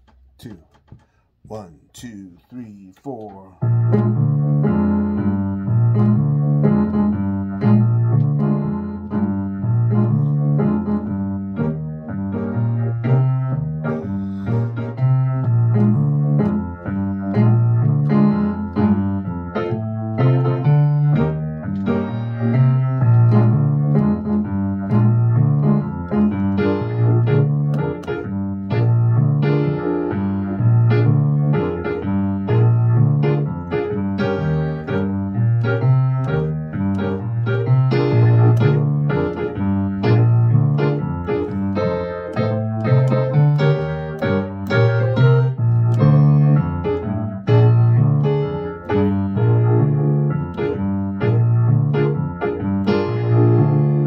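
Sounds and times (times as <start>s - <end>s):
electric keyboard blues chords: 3.2s - 54.0s.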